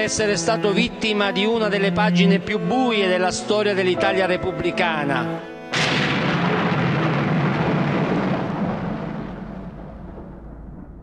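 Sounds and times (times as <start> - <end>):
deep boom rumble: 5.7 - 11.0.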